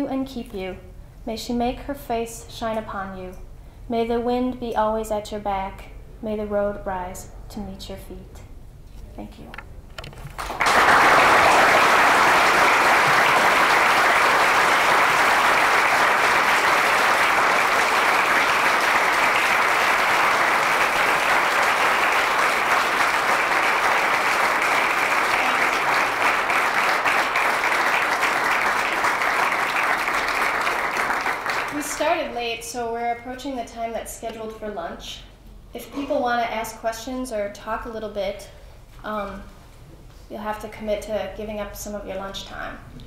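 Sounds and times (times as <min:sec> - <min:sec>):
audience applauding: 0:10.2 - 0:32.1.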